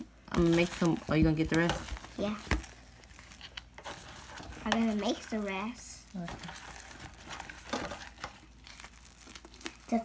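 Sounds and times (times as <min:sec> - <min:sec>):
slime squished by hand: 0:00.4 - 0:10.0.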